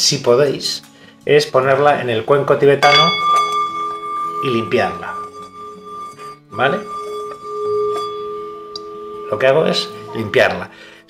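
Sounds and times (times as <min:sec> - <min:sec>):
singing bowl ringing hum: 0:02.8 - 0:10.7.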